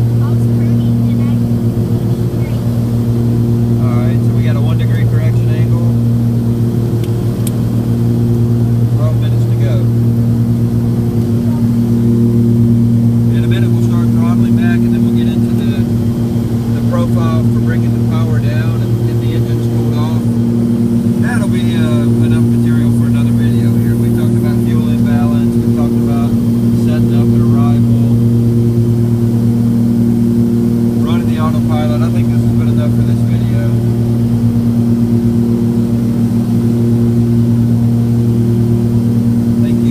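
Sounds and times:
aircraft cabin engine drone: 0.0 - 39.9.

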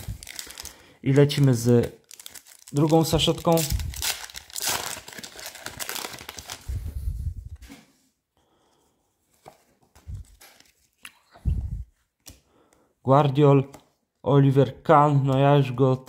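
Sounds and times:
foil pack tearing and crinkling: 0.2 - 0.8, 2.0 - 6.6
soft handling sounds: 6.4 - 12.4.

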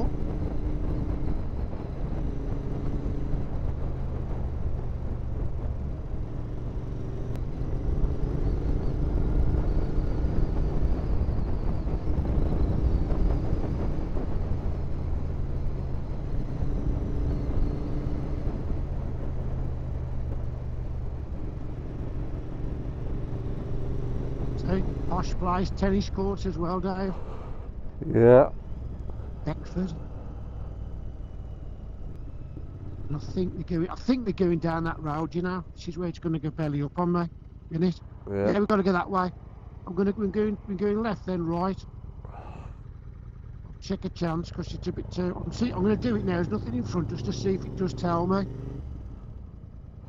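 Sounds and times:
motorcycle engine cruising: 0.0 - 50.0.

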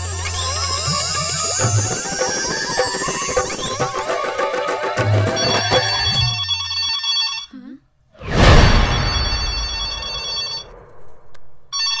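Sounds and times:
mobile phone ringtone: 5.2 - 7.5, 9.6 - 10.7, 11.8 - 12.0.

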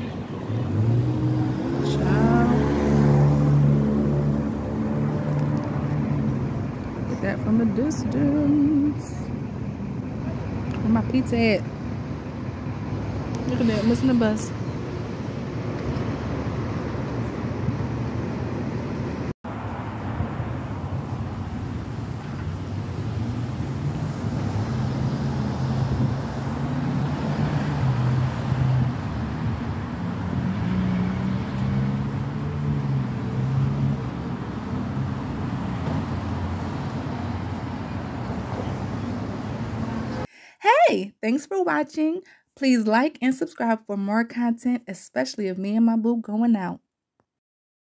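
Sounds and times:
cars driving through intersection: 0.0 - 40.3.

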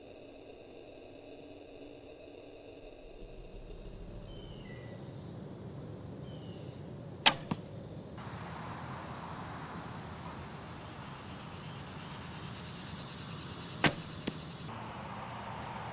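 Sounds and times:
arrow striking foam target: 7.2 - 7.6, 13.8 - 14.4
bowstring snap: 7.2 - 7.7, 13.8 - 14.4.

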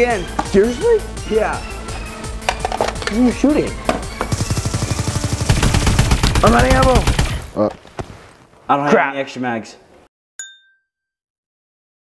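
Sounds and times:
rapid automatic rifle fire: 4.3 - 7.6.

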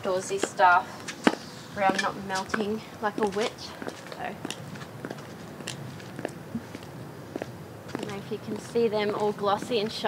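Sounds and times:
high heels clicking on concrete: 0.2 - 10.0.

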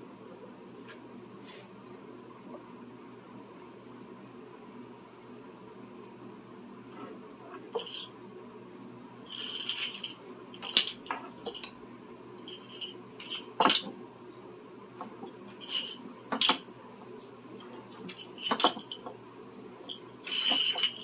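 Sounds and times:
rustling scrapes: 0.7 - 1.8
metal clinks and knocks: 7.7 - 8.1, 9.3 - 11.8, 12.4 - 14.0, 15.0 - 16.7, 17.6 - 19.2, 19.9 - 21.0.

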